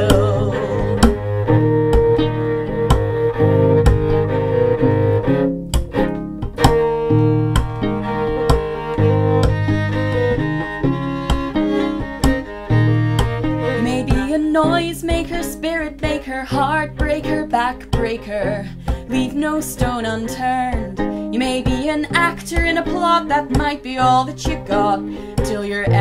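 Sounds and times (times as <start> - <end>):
low sustained bass line: 0.0 - 14.5
bowed violin sustained notes: 0.0 - 26.0
plucked violin notes: 0.0 - 26.0.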